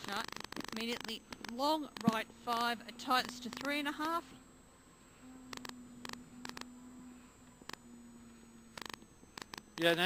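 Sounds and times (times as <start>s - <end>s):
sharp clicks: 0.0s - 2.3s, 3.1s - 4.2s, 5.5s - 6.7s, 7.4s - 7.8s, 8.7s - 10.0s
car interior hum: 0.8s - 10.0s.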